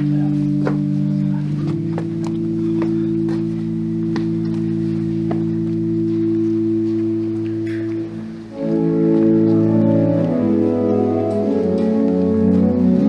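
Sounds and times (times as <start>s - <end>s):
pipe organ chord: 0.0s - 13.0s.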